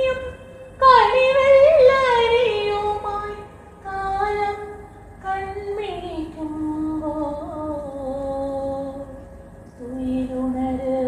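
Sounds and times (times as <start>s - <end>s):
woman singing: 0.0s - 9.2s, 9.8s - 11.0s.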